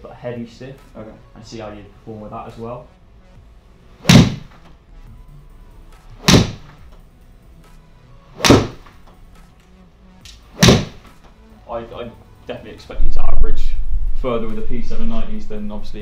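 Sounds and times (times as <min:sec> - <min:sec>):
golf iron striking ball: 0:04.0 - 0:04.5, 0:06.2 - 0:06.7, 0:08.4 - 0:09.0.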